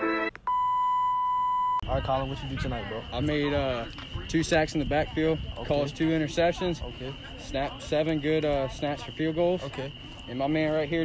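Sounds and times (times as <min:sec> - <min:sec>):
steady electronic beep: 0:00.5 - 0:01.9.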